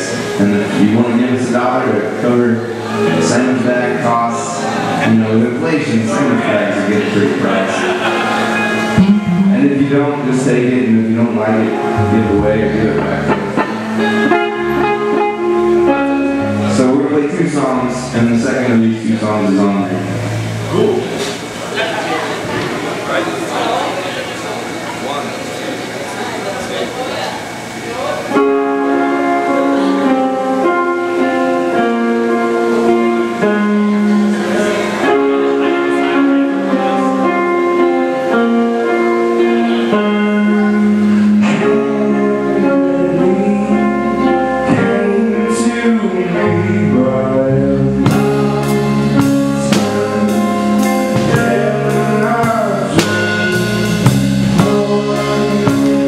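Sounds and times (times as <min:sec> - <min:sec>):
rock band playing instrumental: 0:00.0 - 0:23.9, 0:27.5 - 0:56.0
amplified guitar picking notes: 0:00.0 - 0:56.0.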